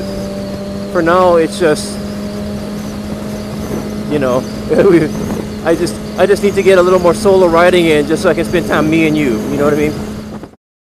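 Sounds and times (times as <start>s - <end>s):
motorcycle engine cruising: 0.0s - 10.6s
wind and road noise: 0.0s - 10.6s.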